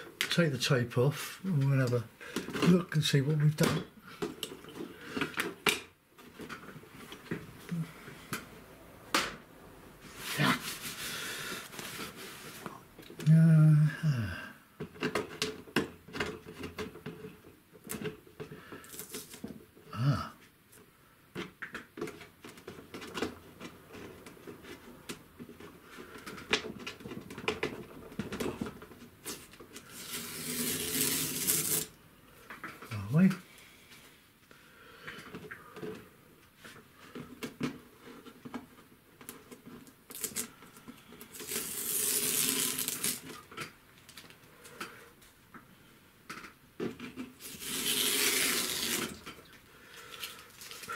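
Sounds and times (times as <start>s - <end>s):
scraping or rustling: 10.0s - 12.8s, 22.8s - 31.9s, 39.5s - 43.5s, 46.9s - 50.9s.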